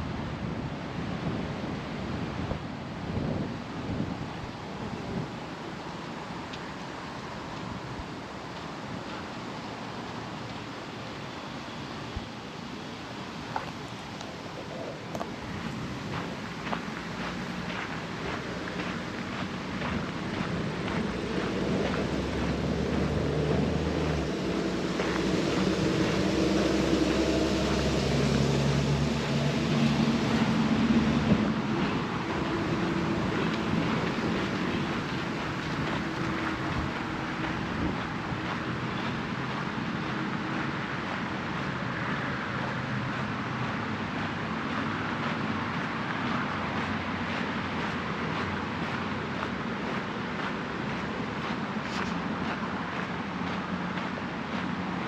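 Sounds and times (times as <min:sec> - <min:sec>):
passing motor traffic hum: 0:00.0 - 0:55.0
steady background noise: 0:00.0 - 0:55.0
footsteps on gravel: 0:15.2 - 0:27.8, 0:29.0 - 0:55.0.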